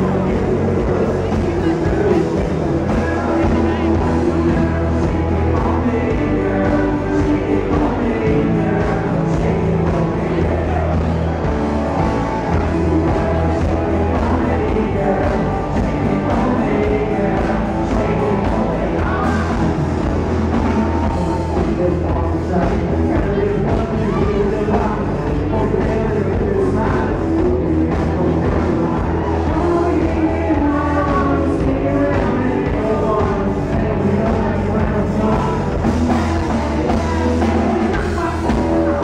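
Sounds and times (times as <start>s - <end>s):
drums: 0.0s - 39.0s
electric guitars: 0.0s - 39.0s
live country band playing: 0.0s - 39.0s
person singing: 0.0s - 39.0s.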